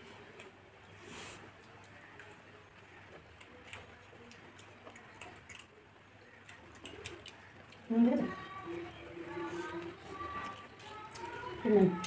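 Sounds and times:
faint eating clicks: 1.6s - 12.0s.

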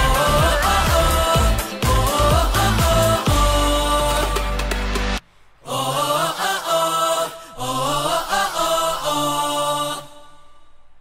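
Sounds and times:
male vocal group singing: 0.0s - 10.6s.

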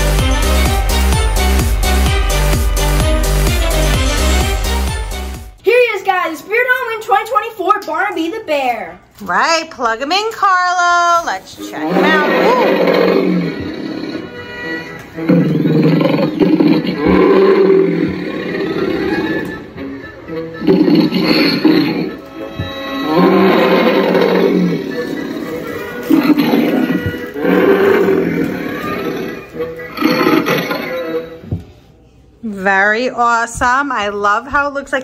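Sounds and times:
music: 0.0s - 8.3s, 11.2s - 32.4s
bear roars and growls: 11.8s - 14.4s, 15.2s - 19.6s, 20.6s - 31.4s.

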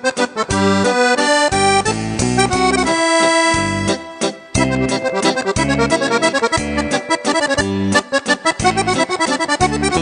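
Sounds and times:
piano accordion melody: 0.0s - 10.0s.

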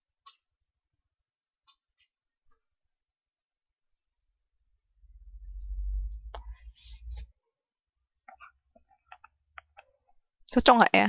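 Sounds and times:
low hum: 4.1s - 7.4s
faint irregular clicks: 8.2s - 10.2s.

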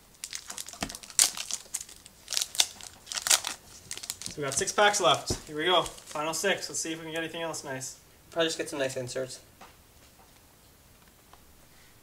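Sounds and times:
foil wrapper crinkling: 0.0s - 6.6s.

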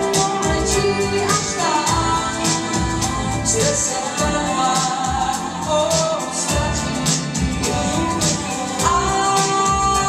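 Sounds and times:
music with steady beat: 0.0s - 10.0s
woman singing into a microphone: 0.0s - 10.0s.

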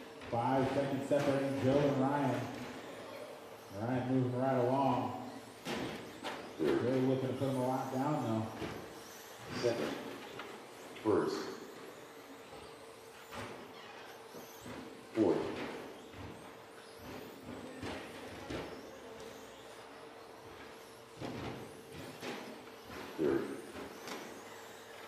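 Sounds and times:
electric rc trucks running: 0.0s - 25.0s.

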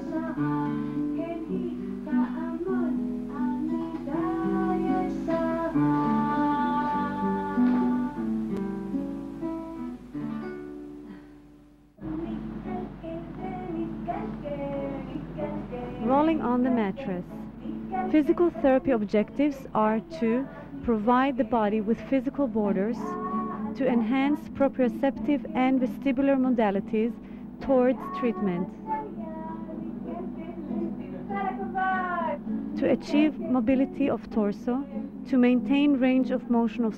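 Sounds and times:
high voice singing slowly: 0.0s - 8.3s, 12.0s - 35.2s
person narrating: 16.0s - 17.3s, 25.2s - 28.7s.

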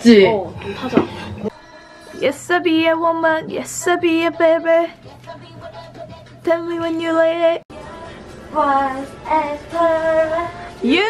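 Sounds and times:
backing music: 0.9s - 11.0s.

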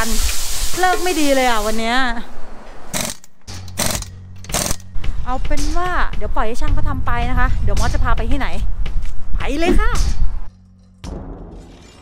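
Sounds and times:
pneumatic impact wrench bursts: 2.9s - 4.8s.

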